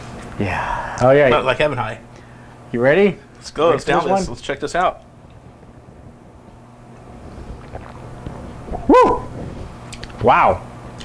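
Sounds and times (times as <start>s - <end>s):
man shouting woo: 8.9s - 9.3s.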